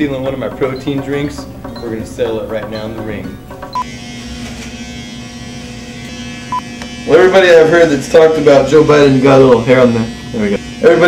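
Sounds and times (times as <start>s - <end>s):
hair clippers buzzing: 3.5s - 11.0s.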